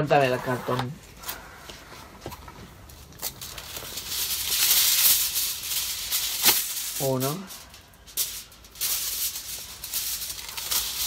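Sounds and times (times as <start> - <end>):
aluminium foil crinkling: 2.7 - 11.0.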